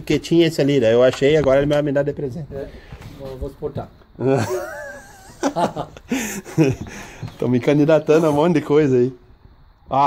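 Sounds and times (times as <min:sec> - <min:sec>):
men talking: 0:00.0 - 0:09.3.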